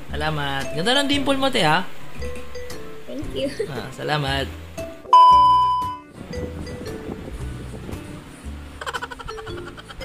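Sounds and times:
soft background music: 0:00.0 - 0:10.0
high test tone beep: 0:05.1 - 0:06.1.

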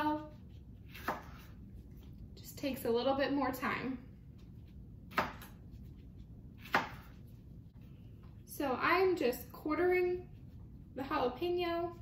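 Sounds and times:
knife chopping on cutting board: 0:00.9 - 0:01.5, 0:05.1 - 0:05.7, 0:06.6 - 0:07.2.

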